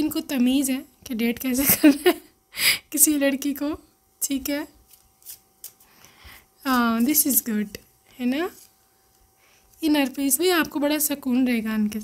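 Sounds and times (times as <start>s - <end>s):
woman speaking: 0.0s - 2.2s, 2.9s - 4.8s, 6.6s - 8.7s, 9.8s - 12.0s
cards shuffling: 4.8s - 7.2s, 8.5s - 10.3s.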